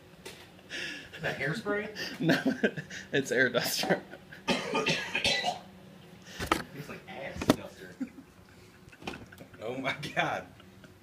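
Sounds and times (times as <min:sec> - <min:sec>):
man coughing and laughing: 0:03.7 - 0:05.7.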